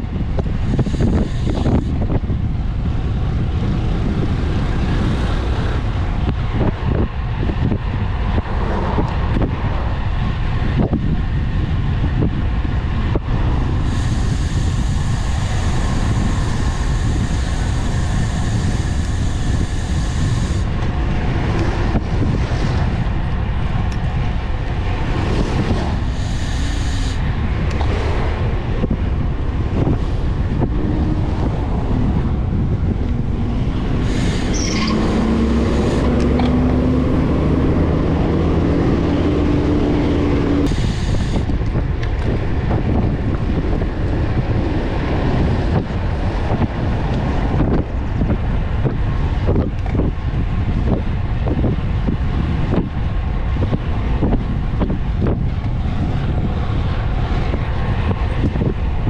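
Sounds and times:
road traffic passing: 0.0s - 59.0s
wind buffeting microphone: 0.0s - 59.0s
truck engine passing: 14.6s - 40.7s.

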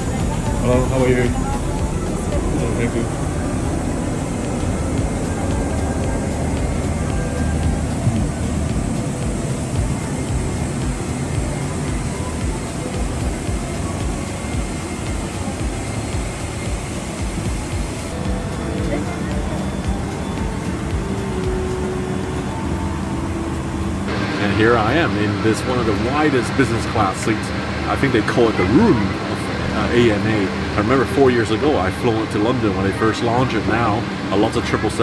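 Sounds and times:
cabin ventilation hum: 0.0s - 32.2s
faint music: 0.0s - 35.0s
murmured voices: 0.0s - 35.0s.

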